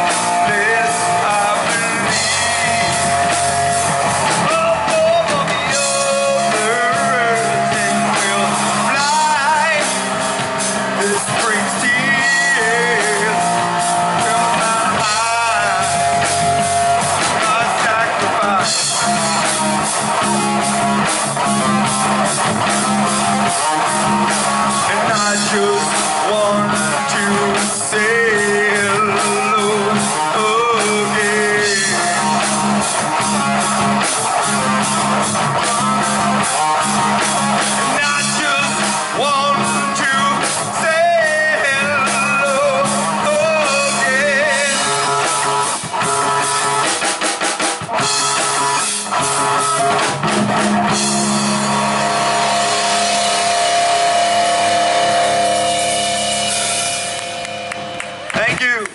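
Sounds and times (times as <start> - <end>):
bass guitar: 0.0 - 58.9
drum kit beat: 0.0 - 58.9
electric guitar: 0.0 - 58.9
rock band holding final chord: 0.0 - 58.9.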